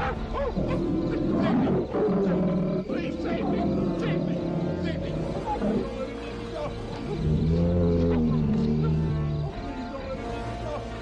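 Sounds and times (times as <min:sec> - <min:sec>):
film score music: 0:00.0 - 0:11.0
large animal roaring and growling: 0:00.6 - 0:06.0.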